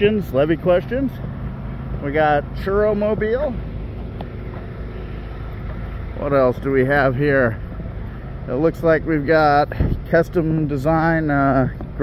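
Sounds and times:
low rumble of street noise: 0.0s - 12.0s.

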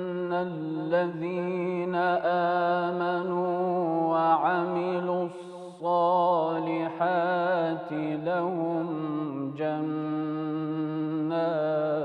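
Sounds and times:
man chanting melodically: 0.0s - 12.0s.

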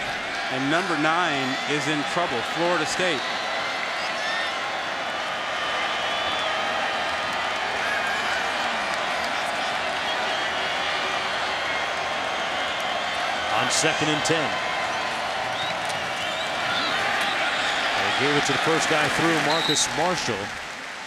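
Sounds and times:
stadium crowd cheering: 0.0s - 21.0s.

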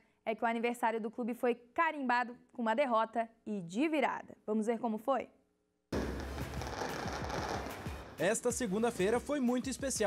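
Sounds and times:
fireworks crackling: 6.0s - 8.4s.

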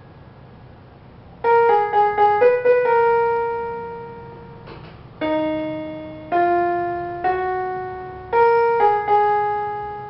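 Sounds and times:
electronic keyboard note: 1.4s - 10.0s.

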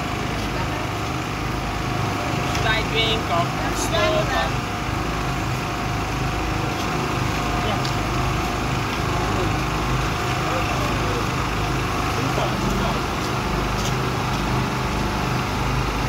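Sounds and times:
small engine running: 0.0s - 16.0s.

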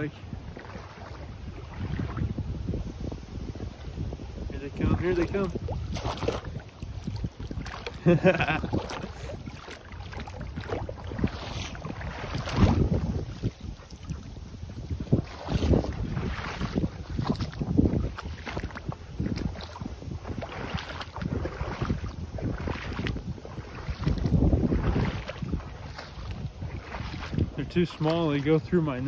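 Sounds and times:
feet splashing through puddle: 0.0s - 2.8s, 5.1s - 29.0s
wind buffeting microphone: 0.0s - 29.0s.

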